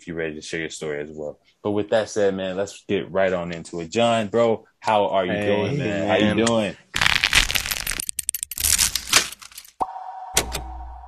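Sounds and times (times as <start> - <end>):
glitch static crackling: 7.0 - 9.0.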